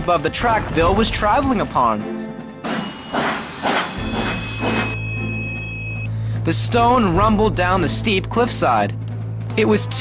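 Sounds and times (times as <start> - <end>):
rockfall crashes and rumbles: 0.0 - 1.8
background music: 0.0 - 10.0.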